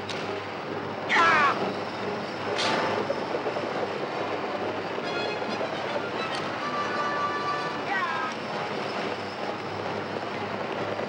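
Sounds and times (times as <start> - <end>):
wagon wheels and hooves rumbling: 0.0 - 11.0
loud high cry: 1.1 - 1.6, 7.8 - 8.4.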